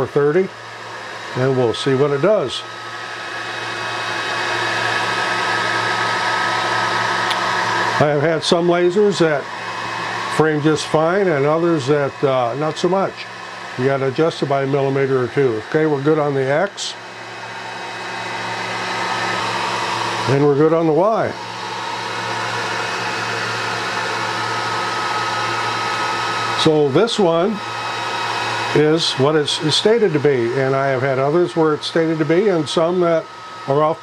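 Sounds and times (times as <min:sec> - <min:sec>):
fan whirring: 0:00.0 - 0:34.0.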